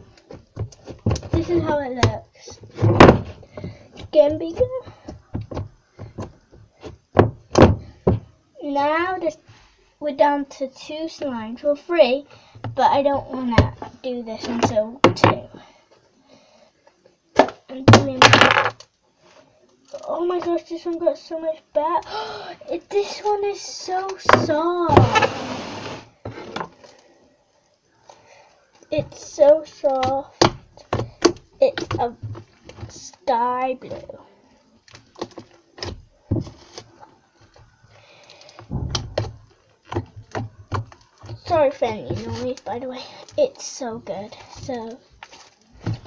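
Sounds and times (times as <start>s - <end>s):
heavy thump: 38.7s - 39.4s.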